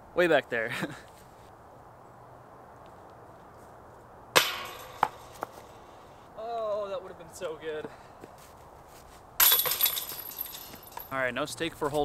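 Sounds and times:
disc hitting metal chains: 4.4s - 5.7s, 9.4s - 11.2s.

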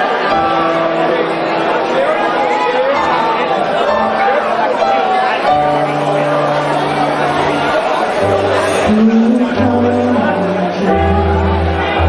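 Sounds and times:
crowd chatter: 0.0s - 12.0s
keyboard playing held chords: 0.0s - 12.0s.

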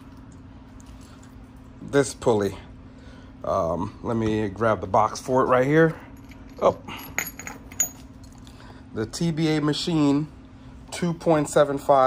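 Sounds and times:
faint steady hum: 0.0s - 12.0s
metal tools clinking: 5.8s - 8.4s.

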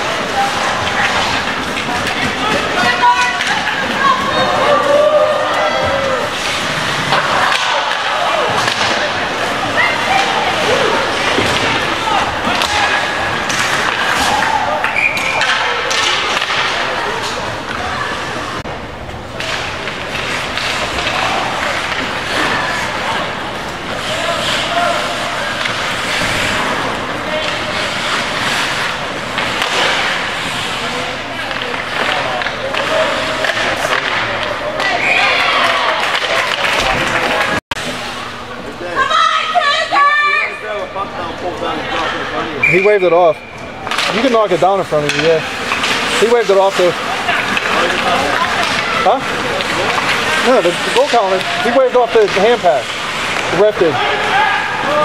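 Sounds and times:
skates scraping ice: 0.0s - 18.4s, 19.4s - 38.1s, 43.9s - 55.0s
sticks and puck clacking: 0.0s - 18.6s, 19.3s - 38.0s, 43.8s - 55.0s
shouts and chatter of crowd: 2.3s - 18.6s, 38.2s - 43.8s, 53.6s - 55.0s.

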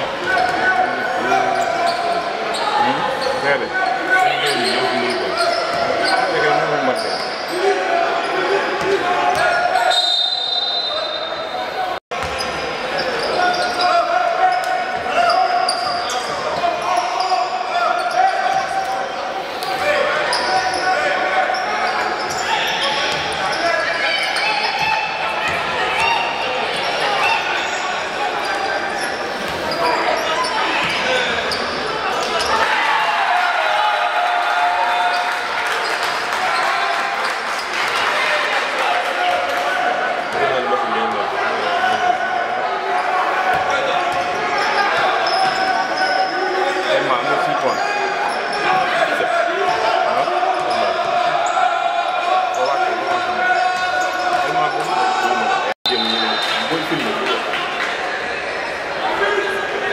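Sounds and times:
basketball bouncing on court: 12.2s - 12.5s.

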